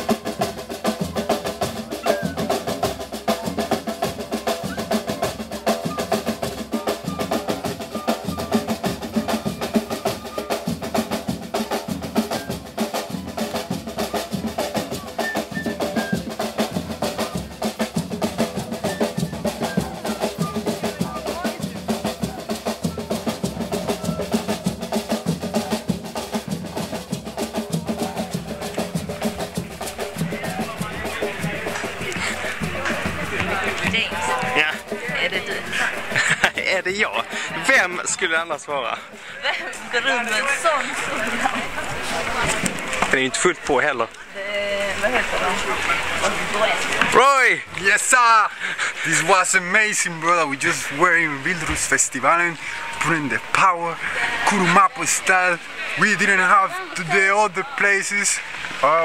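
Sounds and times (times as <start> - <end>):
hand drums playing fast rhythm: 0.0 - 58.0.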